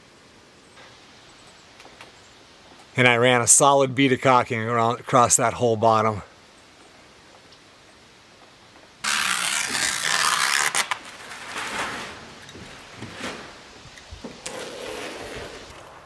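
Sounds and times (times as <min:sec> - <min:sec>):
scraping against plastic wrap: 0:09.0 - 0:13.7.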